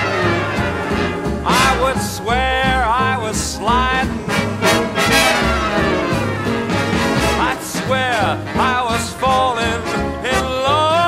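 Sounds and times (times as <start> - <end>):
brass section playing: 0.0 - 11.0
swing big band music: 0.0 - 11.0.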